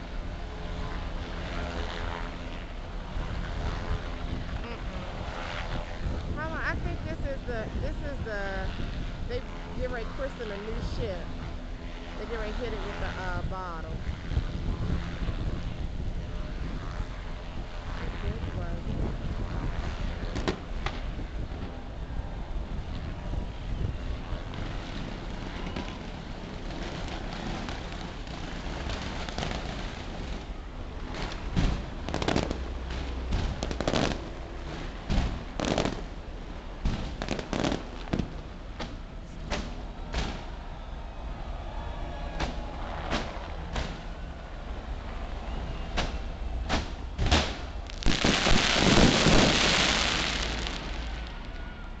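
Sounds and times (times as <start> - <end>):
fireworks bangs and pops: 20.2 - 21.8, 24.4 - 36.1, 36.8 - 40.5, 42.4 - 44.1, 45.9 - 51.4
loud rushing noise: 24.4 - 51.4.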